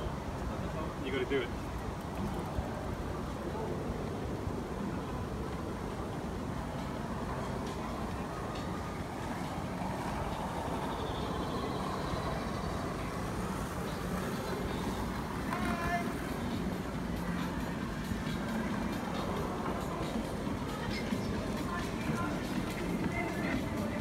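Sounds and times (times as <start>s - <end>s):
low city rumble: 0.0s - 24.0s.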